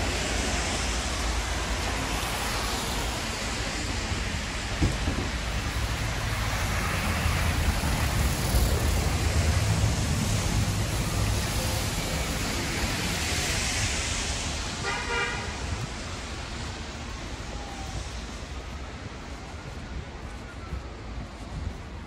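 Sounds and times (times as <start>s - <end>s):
bus passing: 0.0s - 22.0s
traffic on wet road: 0.0s - 22.0s
car horn toot: 14.8s - 15.6s.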